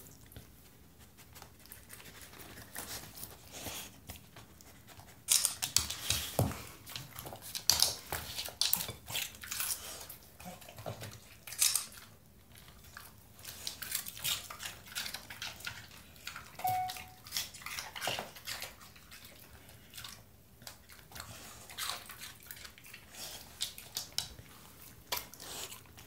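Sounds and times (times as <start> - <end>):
dog crunching and chewing: 0.0 - 26.0.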